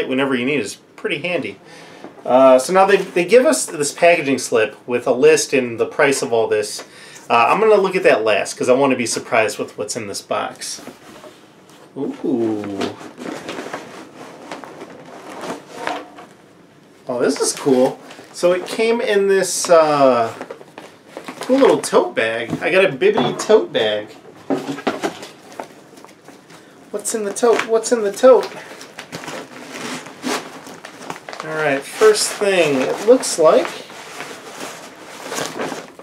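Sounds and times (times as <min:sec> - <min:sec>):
plastic bag crinkling: 0:25.0 - 0:36.0.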